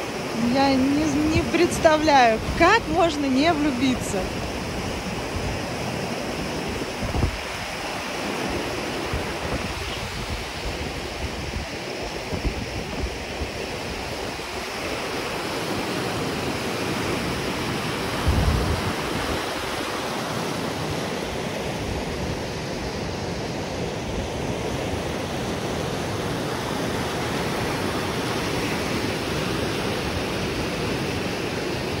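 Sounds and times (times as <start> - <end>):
river rushing over boulders: 0.0 - 32.0.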